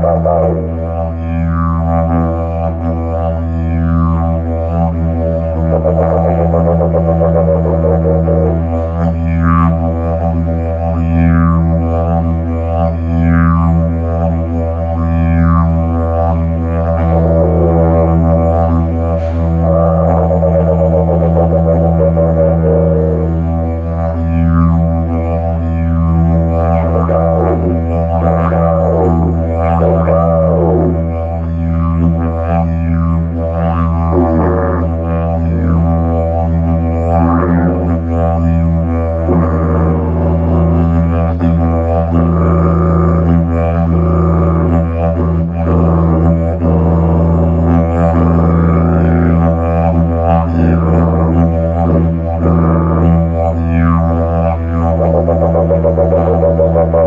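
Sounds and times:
didgeridoo droning: 0.0 - 57.0.

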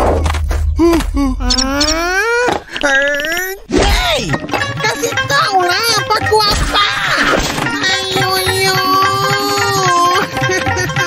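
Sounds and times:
cartoon man wailing: 0.8 - 3.7, 6.7 - 10.4.

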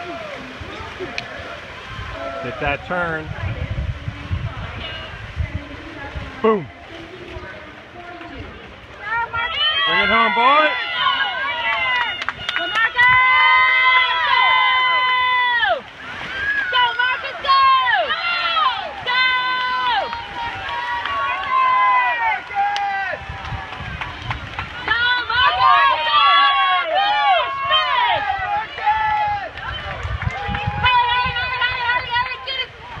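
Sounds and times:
spectators yelling and cheering: 0.0 - 3.6, 8.9 - 33.0.

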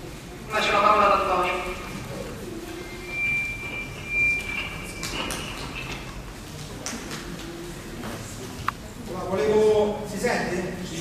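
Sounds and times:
high whistling tone: 2.7 - 6.3.

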